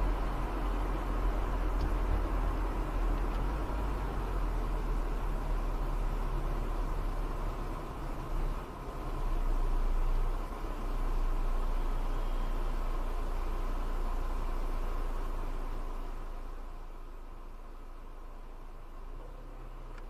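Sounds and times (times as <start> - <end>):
car engine and road rumble: 0.0 - 20.0.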